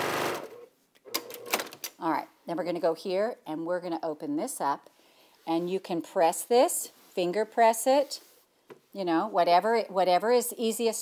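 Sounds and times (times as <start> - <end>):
sewing machine running fast: 0.0 - 0.5.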